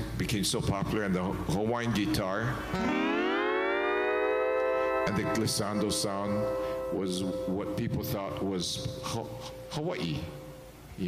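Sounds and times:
lap steel guitar glissando: 2.1 - 8.5.

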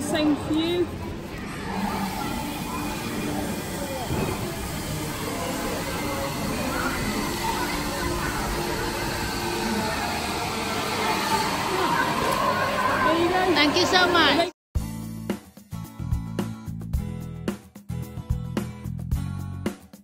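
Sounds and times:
indistinct voices: 0.0 - 14.5.

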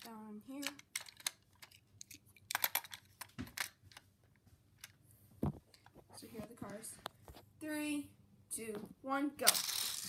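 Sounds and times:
toy cars clicking and rattling: 0.0 - 4.0, 9.4 - 10.0.

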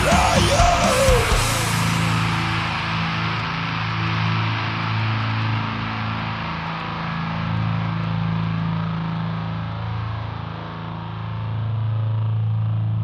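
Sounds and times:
distorted electric guitars: 0.0 - 13.0.

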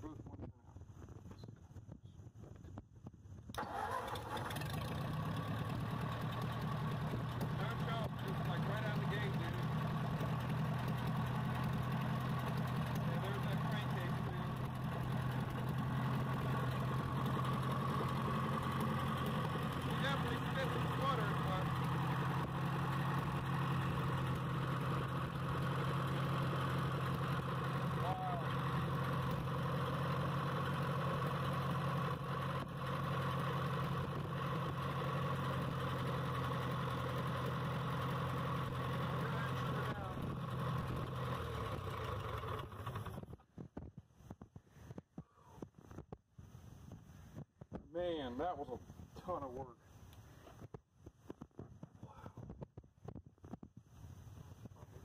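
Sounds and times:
tractor engine starting and running: 3.5 - 43.5.

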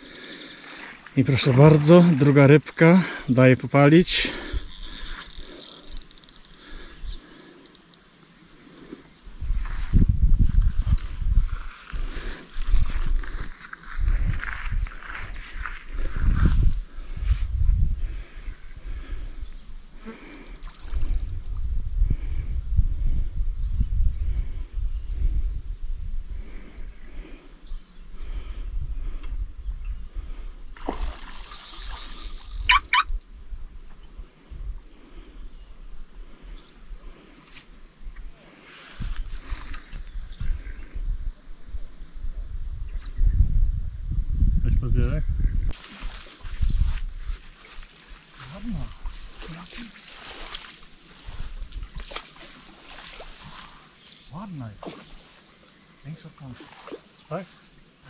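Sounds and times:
wind buffeting microphone: 9.3 - 19.7, 20.8 - 31.2, 39.0 - 47.8, 48.4 - 53.7
brief high squeaks: 32.2 - 33.2.

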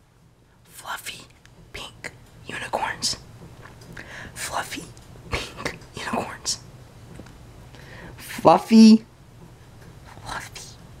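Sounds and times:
person whispering: 0.7 - 3.2, 4.4 - 6.6, 10.1 - 10.8.

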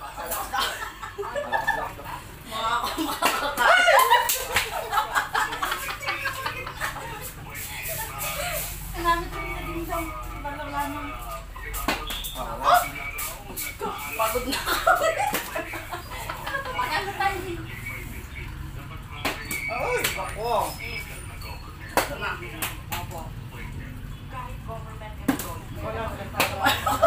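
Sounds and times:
women cackling laughter: 0.0 - 2.0, 2.8 - 7.3, 14.4 - 17.4
women laughing and shrieking: 3.0 - 7.3.

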